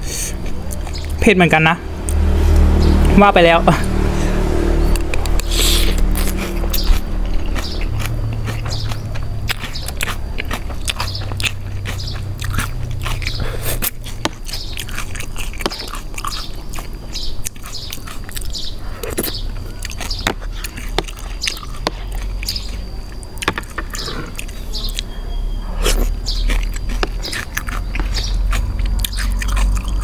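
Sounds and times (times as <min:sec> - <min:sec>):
close chewing of noodles: 0:00.0 - 0:01.2, 0:03.9 - 0:30.0
low steady hum: 0:00.0 - 0:30.0.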